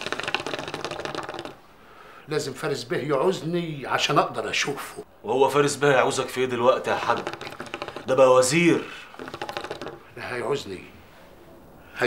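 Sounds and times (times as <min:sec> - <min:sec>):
water pipe bubbling: 0:00.0 - 0:01.6, 0:06.9 - 0:10.2.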